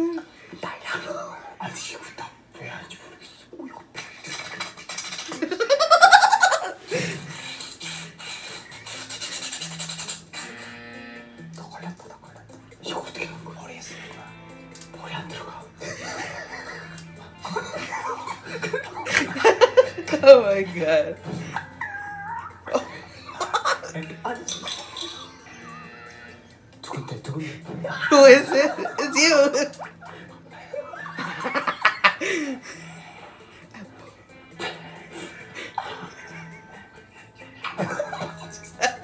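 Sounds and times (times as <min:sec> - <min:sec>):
light background music: 0:00.0 - 0:39.0.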